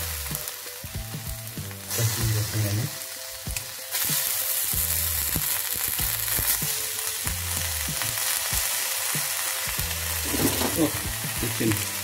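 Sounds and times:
food sizzling in hot oil: 0.0 - 12.0
metal spatula scraping a wok: 10.2 - 11.0.

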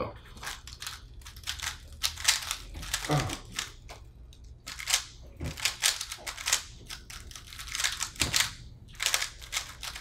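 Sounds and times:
plastic puzzle cubes clicking: 0.4 - 3.8, 4.7 - 10.0.

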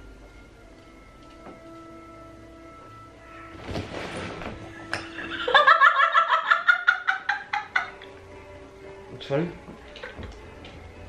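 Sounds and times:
woman laughing hard: 5.1 - 8.1.

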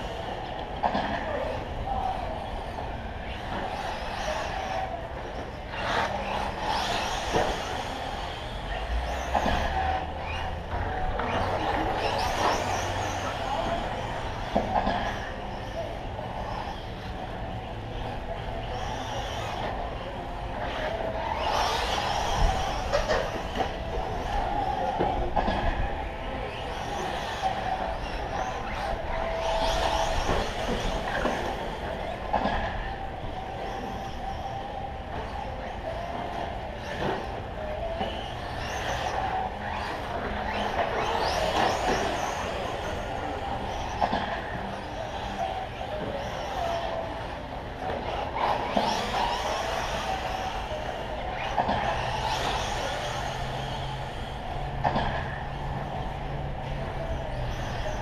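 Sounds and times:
toy truck motors whining: 0.0 - 58.0.

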